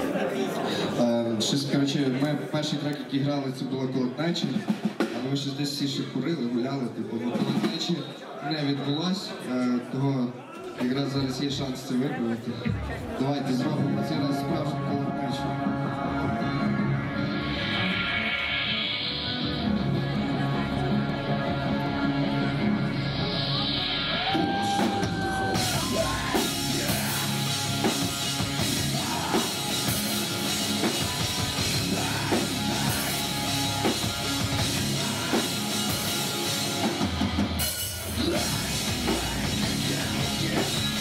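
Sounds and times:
drums with crashing cymbals: 0:04.4 - 0:05.5, 0:23.0 - 0:41.0
distorted electric guitars: 0:13.8 - 0:41.0
heavy metal band playing live: 0:13.8 - 0:41.0.

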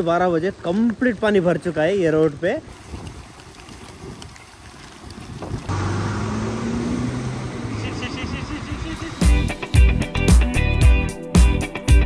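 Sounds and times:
water splashing: 0:00.0 - 0:09.5
motor scooter engine: 0:05.7 - 0:09.2
music with a strong beat: 0:09.2 - 0:12.0.

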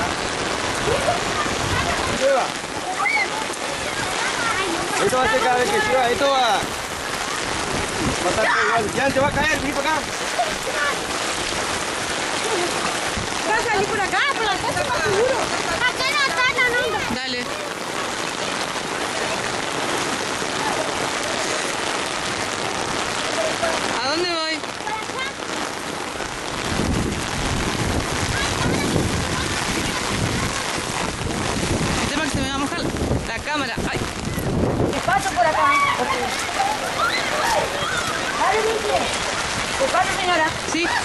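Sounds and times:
wind buffeting microphone: 0:00.0 - 0:21.2, 0:25.8 - 0:41.0
rain hiss: 0:00.0 - 0:41.0
child crying out: 0:35.4 - 0:38.4.

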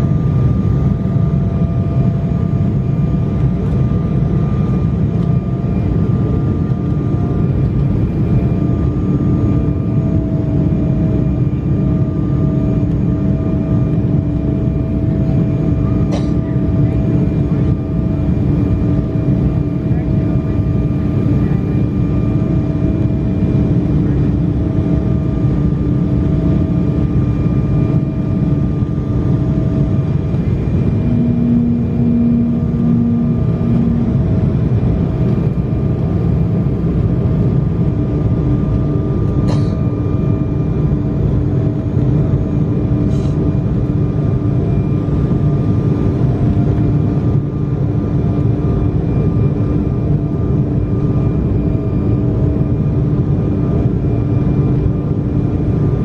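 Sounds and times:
jet engines and airflow: 0:00.0 - 0:56.0
low pulsing tone: 0:00.0 - 0:56.0
steady humming tones: 0:00.0 - 0:56.0.

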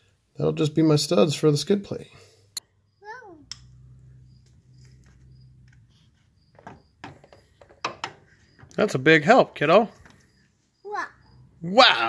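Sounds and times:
toddler babbling: 0:03.0 - 0:03.4, 0:10.9 - 0:11.2.

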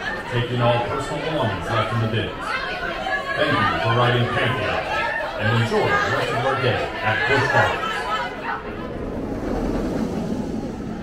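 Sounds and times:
roller coaster train rumbling: 0:03.8 - 0:11.0.

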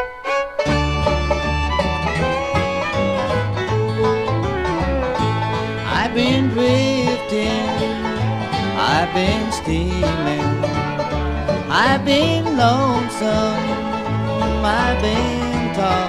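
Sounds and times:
banjo: 0:00.0 - 0:16.0
bluegrass band playing: 0:00.0 - 0:16.0
sliding notes: 0:00.0 - 0:16.0.

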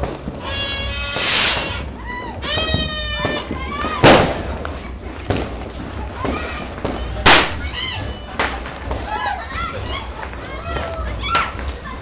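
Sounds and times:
firecracker bangs: 0:00.0 - 0:04.6, 0:06.2 - 0:07.8.

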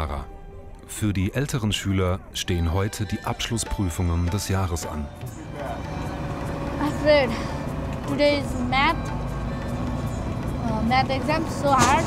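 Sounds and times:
bus engine and road rumble: 0:04.5 - 0:12.0.

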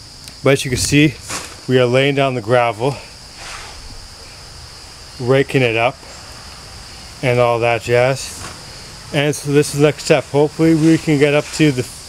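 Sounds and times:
crickets chirring: 0:00.0 - 0:12.0
faint outdoor hiss: 0:00.0 - 0:12.0.

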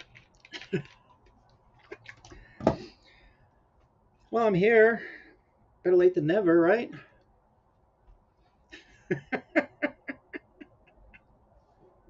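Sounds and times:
man laughing: 0:08.7 - 0:11.3.

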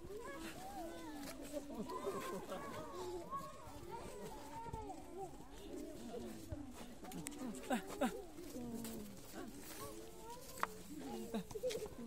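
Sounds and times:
people vocalising and laughing: 0:00.0 - 0:12.0.

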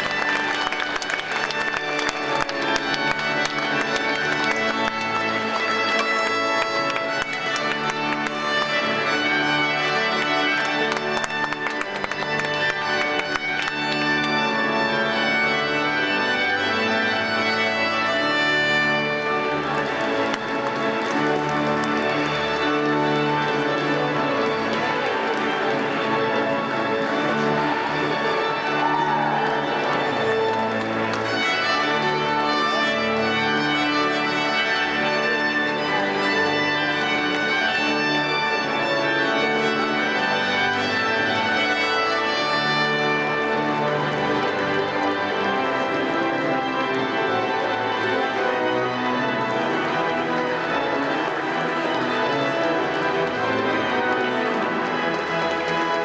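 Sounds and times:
organ music: 0:00.0 - 0:56.0.

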